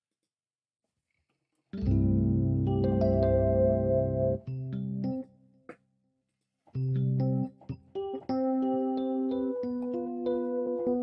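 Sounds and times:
electric piano playing chords: 1.8 - 5.4, 6.8 - 11.0.

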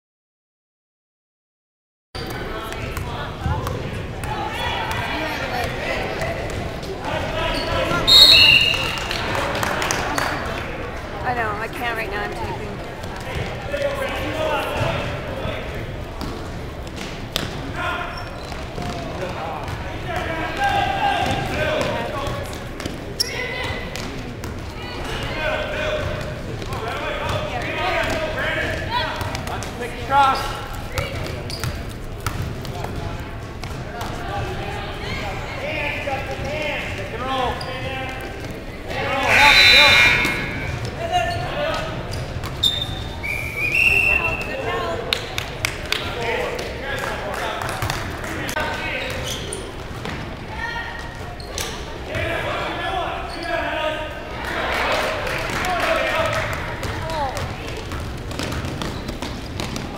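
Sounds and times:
spectators' voices and calls: 2.2 - 59.9
basketball bouncing on court: 16.2 - 17.6, 30.9 - 34.2, 56.8 - 59.9
loud shout: 39.0 - 40.8.

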